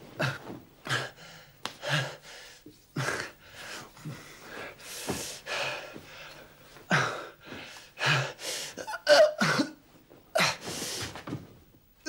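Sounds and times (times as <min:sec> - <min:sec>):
man coughing and retching: 0:08.8 - 0:09.8.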